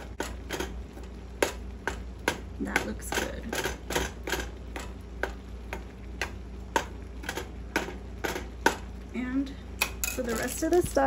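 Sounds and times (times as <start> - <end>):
spatula tapping frying pan: 0.1 - 8.9.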